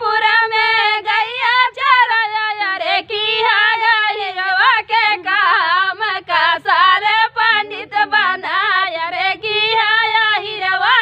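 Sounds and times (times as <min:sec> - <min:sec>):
women singing unaccompanied: 0:00.0 - 0:11.0.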